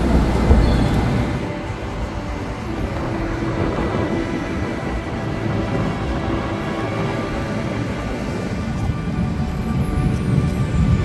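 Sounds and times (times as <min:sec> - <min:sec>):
train rumbling along track: 0:00.0 - 0:11.0.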